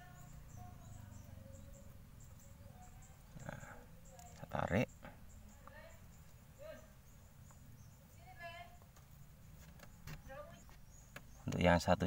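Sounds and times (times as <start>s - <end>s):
faint distant calls: 0.0s - 12.0s.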